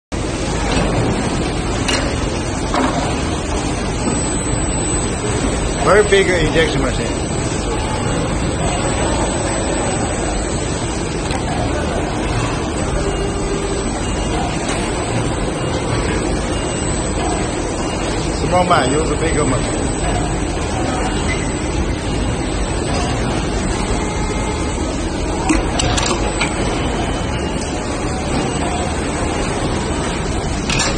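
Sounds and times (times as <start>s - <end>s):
factory floor noise: 0.2s - 30.9s
injection moulding machine running: 0.2s - 30.9s.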